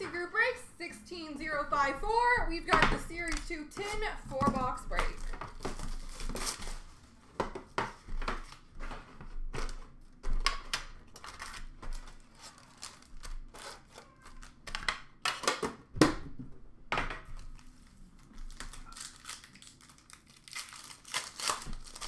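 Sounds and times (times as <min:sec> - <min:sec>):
foil packs crinkling: 0:04.6 - 0:07.1, 0:08.1 - 0:14.6, 0:17.4 - 0:22.0.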